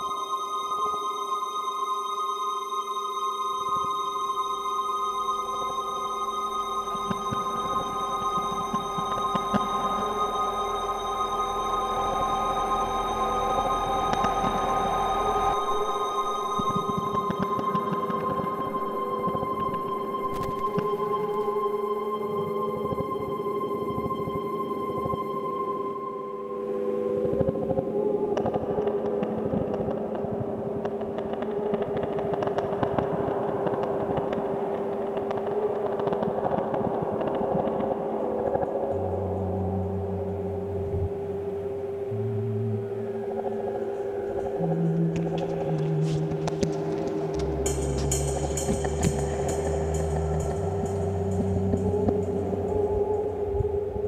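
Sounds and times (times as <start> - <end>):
synth drone: 0.0 - 54.0
low synth bass line: 38.5 - 54.0.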